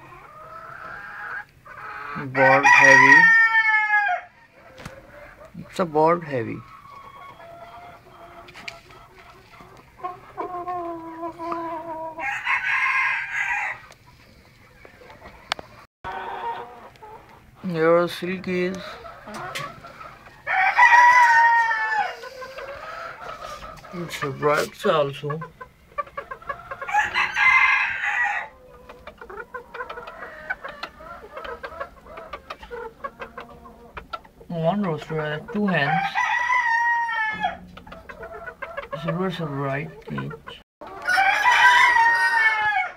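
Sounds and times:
hens clucking: 0.0s - 42.9s
rooster crowing: 2.4s - 4.4s, 12.2s - 13.8s, 20.4s - 22.2s, 26.8s - 28.6s, 35.8s - 37.7s, 41.0s - 42.9s.

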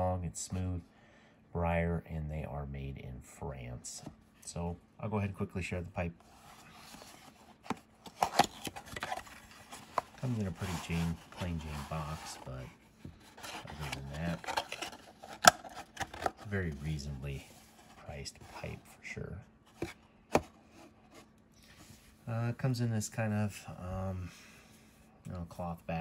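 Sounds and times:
cardboard rubbing: 6.2s - 18.9s
packaging rustling: 6.6s - 16.6s.

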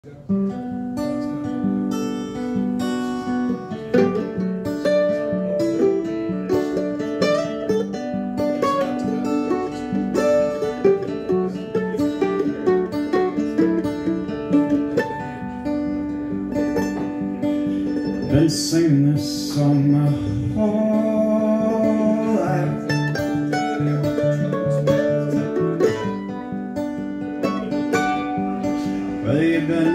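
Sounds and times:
picked mandolin notes: 0.0s - 29.9s
strummed acoustic guitar chords: 0.0s - 29.9s.

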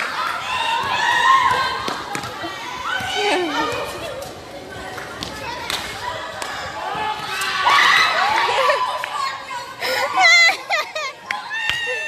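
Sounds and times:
children shouting and cheering: 0.0s - 4.2s, 4.8s - 12.0s.

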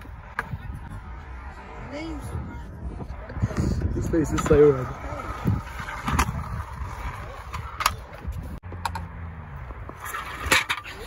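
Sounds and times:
scooter wheels rolling on concrete: 0.0s - 11.0s.

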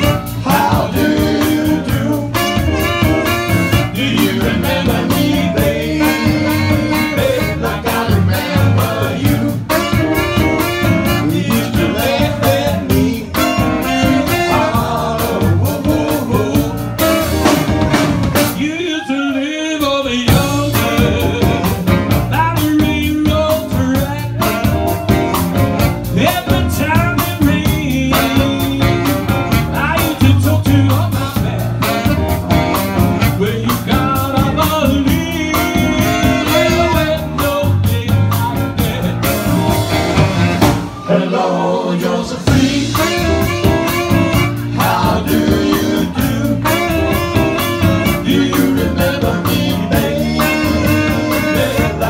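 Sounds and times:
saxophones: 0.0s - 18.7s, 35.3s - 37.6s, 39.2s - 52.0s
steady drum beat: 0.0s - 18.8s, 20.2s - 41.0s, 42.0s - 52.0s
live rhythm and blues band: 0.0s - 52.0s.

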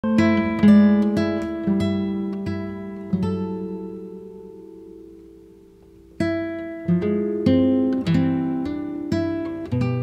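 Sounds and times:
plucked acoustic guitar: 0.0s - 10.0s.

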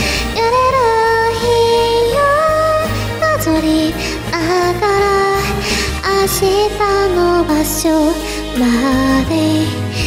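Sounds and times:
backing track: 0.0s - 10.0s
woman singing: 0.0s - 10.0s.

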